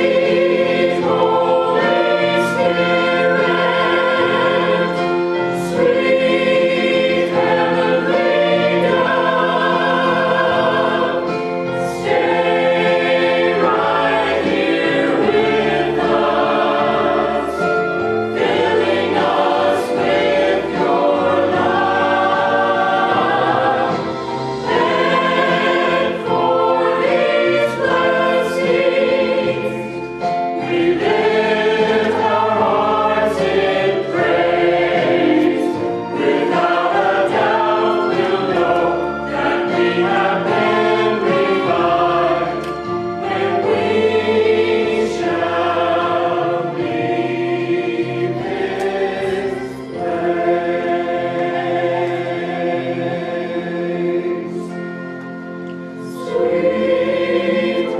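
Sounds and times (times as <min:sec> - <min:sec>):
church choir singing: 0:00.0 - 0:57.9.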